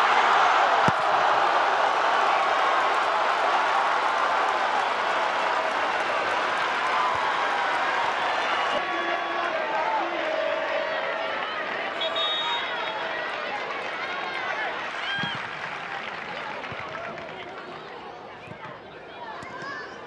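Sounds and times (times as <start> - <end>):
stadium crowd cheering and shouting: 0.0 - 20.0.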